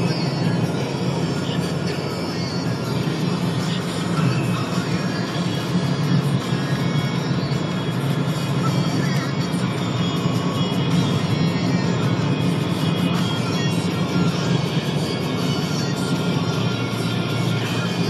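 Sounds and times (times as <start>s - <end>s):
car driving drone: 0.0s - 18.0s
music playing: 0.0s - 18.0s.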